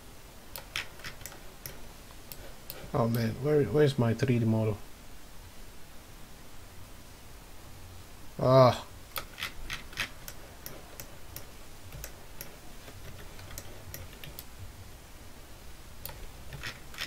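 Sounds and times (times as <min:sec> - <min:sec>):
mouse and keyboard clicks: 0:00.6 - 0:03.3, 0:09.1 - 0:14.5, 0:16.0 - 0:17.0.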